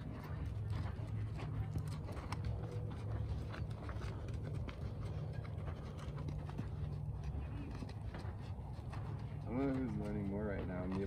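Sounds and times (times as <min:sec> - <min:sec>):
hooves on dirt: 0:00.0 - 0:11.0.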